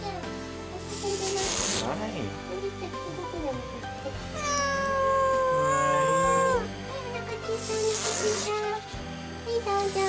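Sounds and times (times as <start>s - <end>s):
kitten hissing: 0.8s - 2.0s, 4.2s - 6.7s, 7.4s - 9.0s
kitten meowing: 4.2s - 6.7s.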